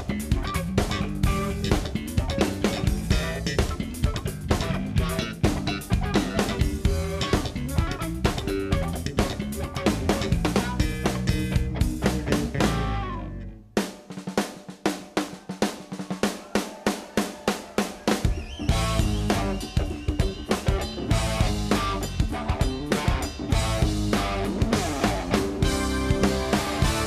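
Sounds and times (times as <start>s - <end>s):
electric guitar: 0.0s - 13.7s, 18.3s - 27.0s
electric bass: 0.0s - 13.8s, 18.6s - 27.0s
drum kit playing: 0.0s - 27.0s.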